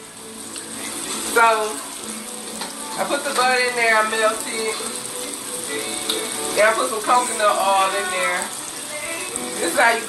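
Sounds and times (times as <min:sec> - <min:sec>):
frying sizzle in pans: 0:00.0 - 0:10.0.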